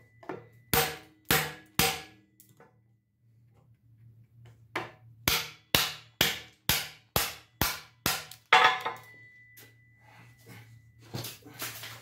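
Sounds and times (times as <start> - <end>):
hammer striking knife blade: 0.2 - 2.2.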